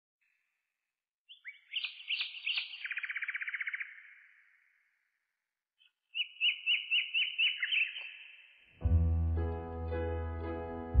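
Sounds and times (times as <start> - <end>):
songbird chirping and trilling: 1.3 - 5.2, 5.8 - 8.8.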